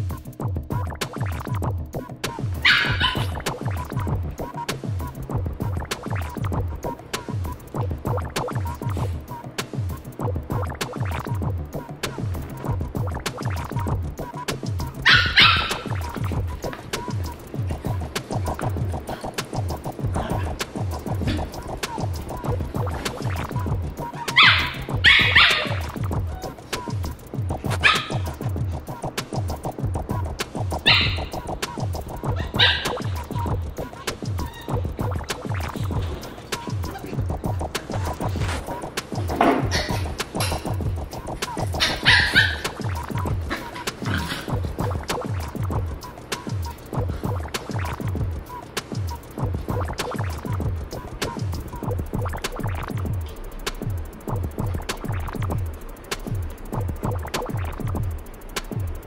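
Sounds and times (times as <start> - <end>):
background music with beat: 0.0 - 59.0
dog barking: 2.6 - 3.7, 15.0 - 17.2, 24.0 - 26.9, 27.7 - 28.4, 30.8 - 31.5, 32.2 - 33.6, 41.5 - 44.6.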